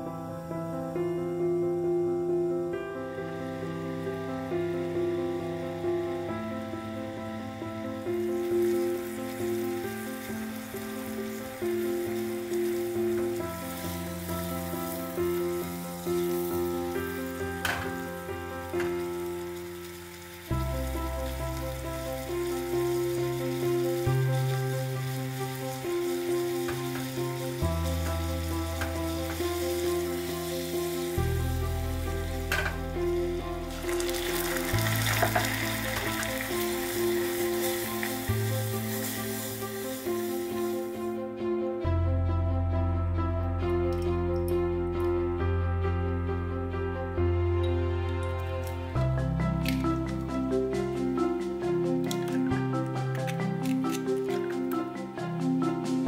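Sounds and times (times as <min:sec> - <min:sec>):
background music: 0:00.0 - 0:56.0
syrup boiling in saucepan: 0:18.5 - 0:41.0.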